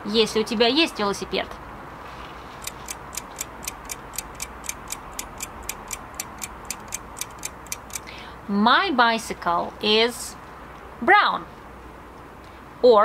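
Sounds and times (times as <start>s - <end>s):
clock ticking: 2.6s - 8.1s.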